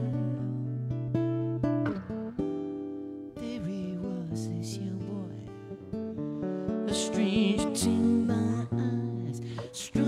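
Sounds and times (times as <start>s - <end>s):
acoustic guitar strumming: 0.0s - 10.0s
man singing: 3.4s - 5.8s, 6.8s - 10.0s.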